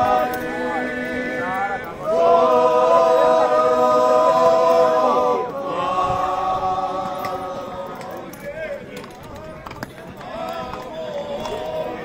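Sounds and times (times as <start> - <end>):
men singing a long note: 0.0 - 8.3, 10.2 - 12.0.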